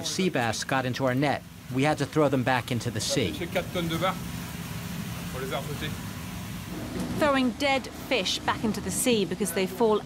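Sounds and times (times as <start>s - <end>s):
boat engine drone: 2.3s - 10.0s.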